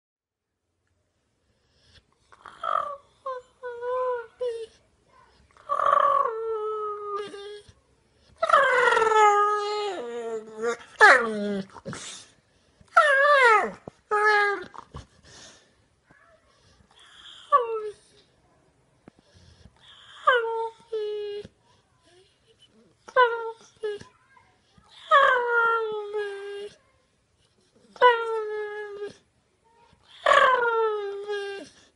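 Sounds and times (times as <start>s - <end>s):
dog whining: 1.9s - 4.8s, 5.6s - 12.3s, 12.9s - 15.6s, 24.9s - 26.8s, 30.0s - 31.9s.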